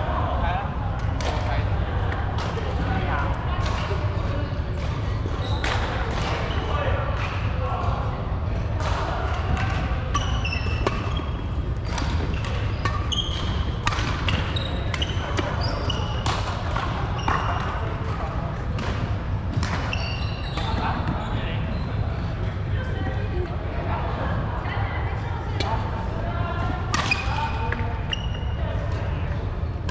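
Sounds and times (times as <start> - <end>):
low rumble of hall: 0.0 - 29.9
racquets hitting shuttlecocks: 8.8 - 21.2, 26.9 - 27.8.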